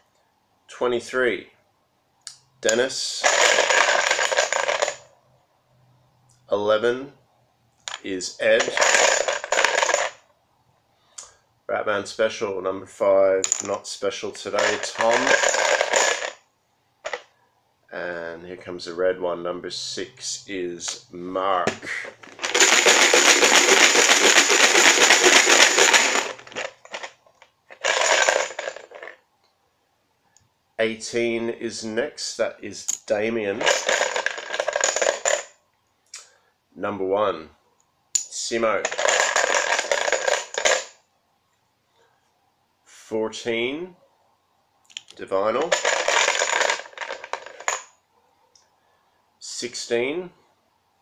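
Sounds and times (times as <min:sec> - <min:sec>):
plastic discs clattering in a box: 0:22.1 - 0:27.1.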